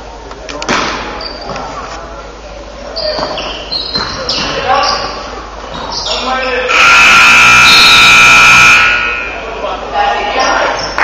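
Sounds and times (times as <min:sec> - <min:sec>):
scoreboard horn blast: 0:06.7 - 0:09.2.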